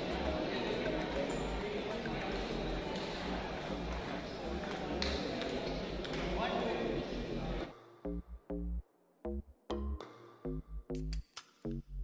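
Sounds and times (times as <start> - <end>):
spectators chatting: 0.0 - 7.8
table tennis ball clicking: 3.0 - 6.7.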